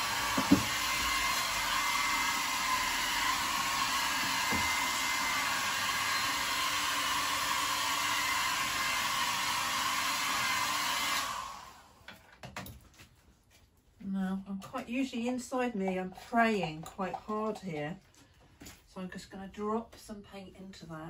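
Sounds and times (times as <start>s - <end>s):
hair dryer blowing air: 0.0s - 12.1s.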